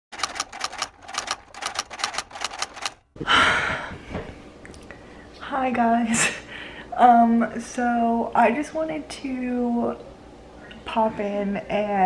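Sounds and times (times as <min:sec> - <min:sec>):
typewriter key clicks: 0:00.2 - 0:03.0.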